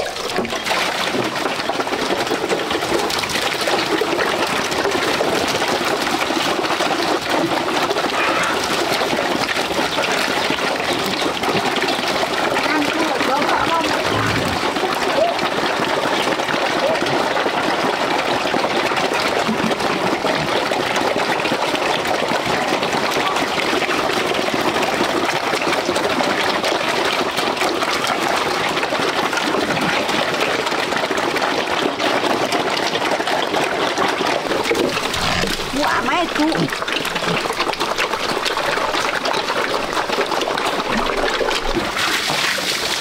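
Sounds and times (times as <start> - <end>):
pigs chewing and slurping: 0.0 - 43.0
pigs grunting: 8.0 - 8.8, 13.3 - 15.0, 34.5 - 38.8.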